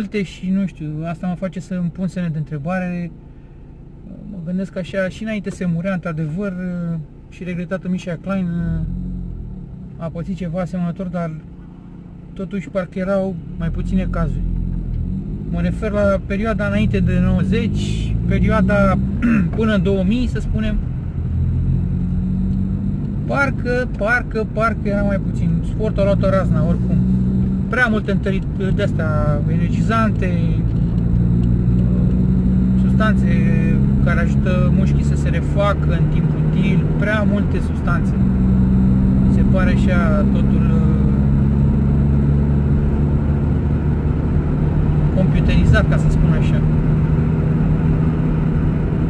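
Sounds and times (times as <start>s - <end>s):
car engine and road noise: 0.0s - 49.0s
steady hum: 11.3s - 41.7s.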